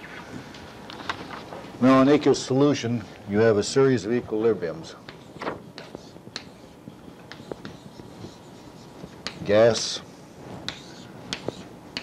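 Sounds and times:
chalk tapping on blackboard: 5.0s - 9.9s, 10.6s - 12.0s
chalk scratching: 5.1s - 12.0s.

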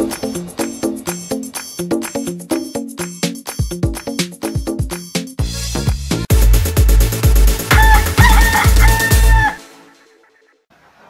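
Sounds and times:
electronic dance music: 0.0s - 9.9s
rooster crowing: 7.7s - 9.7s.

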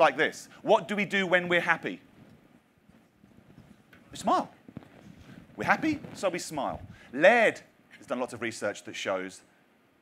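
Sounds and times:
soft footsteps on stage floor: 2.0s - 7.1s.

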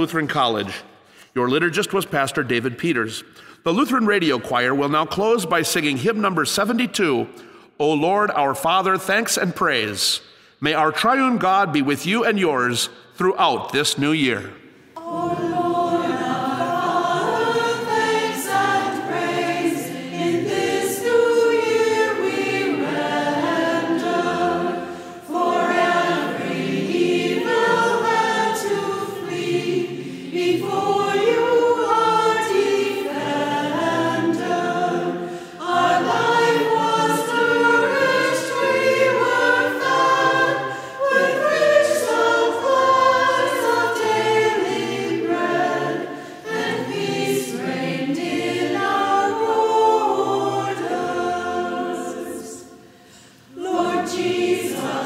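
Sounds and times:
choir singing a hymn: 13.5s - 55.0s.

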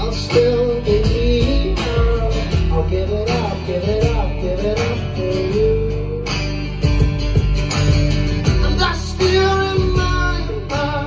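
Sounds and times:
man singing: 0.0s - 7.0s, 8.5s - 11.0s
electric bass: 0.0s - 11.0s
strummed acoustic guitar: 0.0s - 11.0s
drum hits: 6.8s - 10.5s.

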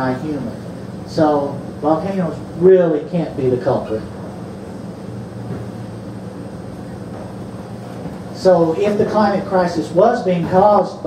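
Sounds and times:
room noise hiss: 0.0s - 11.0s
steady low hum: 0.0s - 11.0s.

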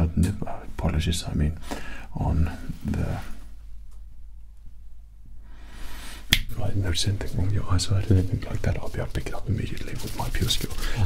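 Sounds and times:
man speaking softly: 0.0s - 3.4s, 6.5s - 11.0s
faint hiss: 0.0s - 11.0s
low steady hum: 0.0s - 11.0s.

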